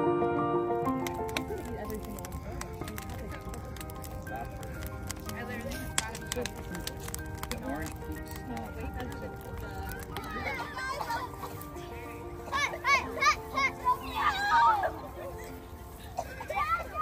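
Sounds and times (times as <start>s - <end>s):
soft background music: 0.0s - 17.0s
bonfire crackling and popping: 0.8s - 17.0s
distant voices: 0.9s - 17.0s.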